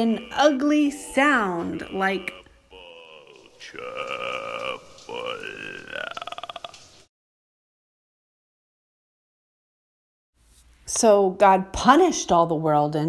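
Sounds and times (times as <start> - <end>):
woman making gurgling sound: 0.0 - 6.8.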